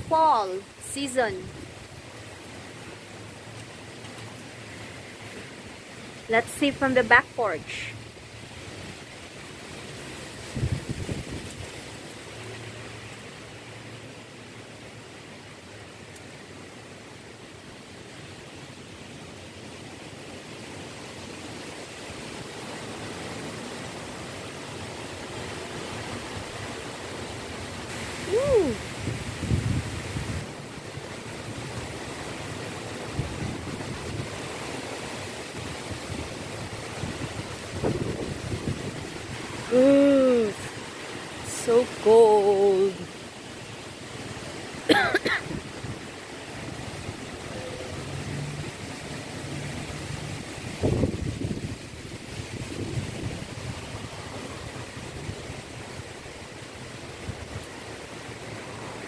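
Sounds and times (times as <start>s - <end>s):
wind rushing through trees: 0.0s - 59.0s
wind buffeting microphone: 10.4s - 11.8s, 28.2s - 30.6s, 35.6s - 39.7s, 49.9s - 56.0s.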